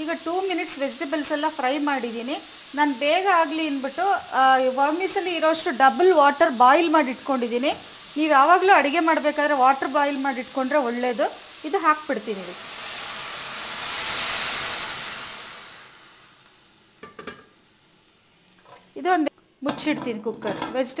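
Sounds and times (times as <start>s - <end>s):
water hissing on hot pan: 0.0s - 19.2s.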